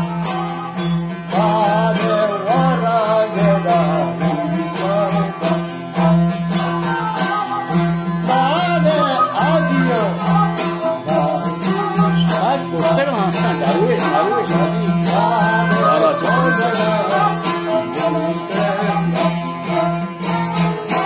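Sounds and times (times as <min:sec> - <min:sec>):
bowed fiddle melody: 0:00.0 - 0:21.0
long-necked lute strummed: 0:00.0 - 0:21.0.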